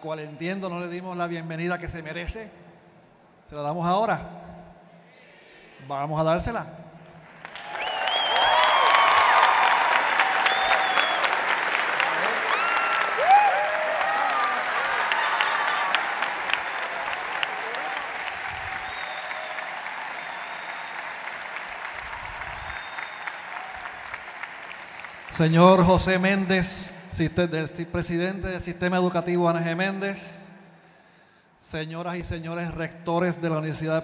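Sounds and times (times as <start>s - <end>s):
audience applauding: 7.2s - 26.5s
crowd whooping and cheering: 7.4s - 25.3s.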